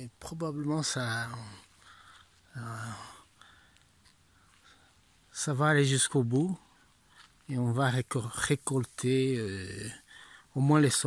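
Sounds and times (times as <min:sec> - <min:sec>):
man breathing: 0:01.5 - 0:05.3, 0:10.0 - 0:10.6.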